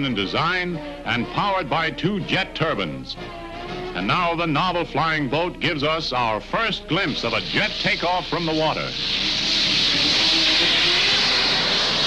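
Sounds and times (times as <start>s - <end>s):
jet engine roar: 0.0s - 12.0s.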